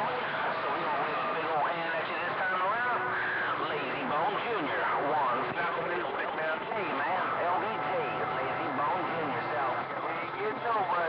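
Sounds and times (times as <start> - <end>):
garbled radio voices: 0.0 - 11.0
whistling radio tones: 0.1 - 11.0
radio static: 0.2 - 11.0.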